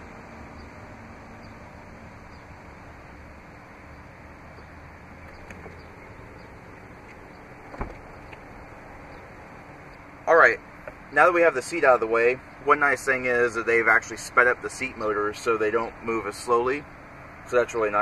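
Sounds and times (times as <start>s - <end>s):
power seat motor humming: 0.5s - 9.7s
short thump: 7.7s - 8.1s.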